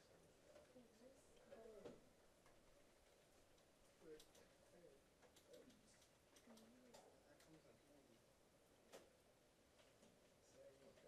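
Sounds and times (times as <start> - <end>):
soft clicks: 5.2 - 7.6.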